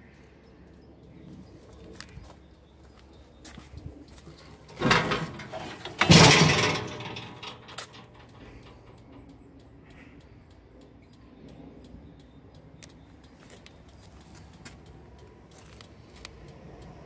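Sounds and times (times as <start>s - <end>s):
engine cover clattering open: 4.4s - 8.8s.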